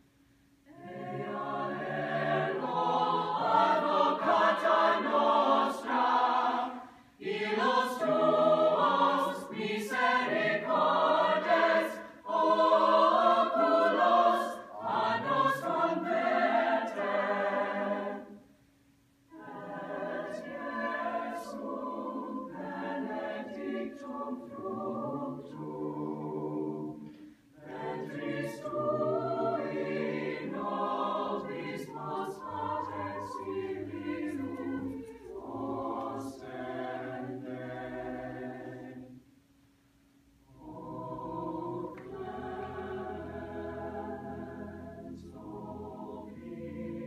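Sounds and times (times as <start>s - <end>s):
mixed choir singing unaccompanied: 0.7s - 18.5s, 19.3s - 39.2s, 40.5s - 47.0s.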